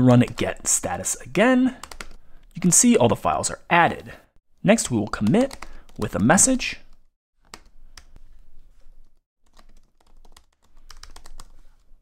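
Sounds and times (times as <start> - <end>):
computer keyboard typing: 0.1 - 0.8, 1.8 - 2.7, 5.1 - 6.2, 6.9 - 8.3, 9.4 - 11.9.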